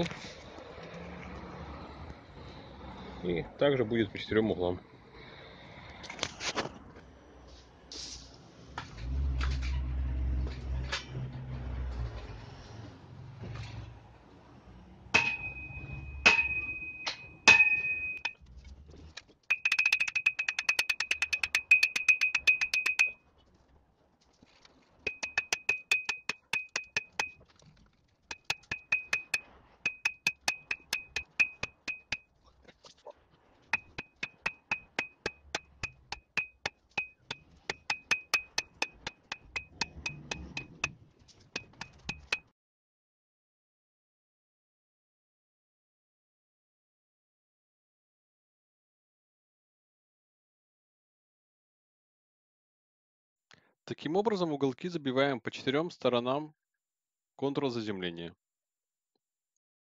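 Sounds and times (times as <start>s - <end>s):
hammer clanging on steel: 15.2s - 18.4s, 19.5s - 23.2s, 25.1s - 27.4s, 28.3s - 32.2s, 33.8s - 41.0s, 41.6s - 42.4s.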